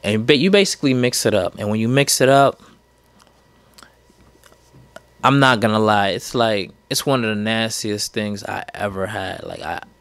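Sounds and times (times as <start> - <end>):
man's mouth clicks and lip smacks: 3.0 - 5.1.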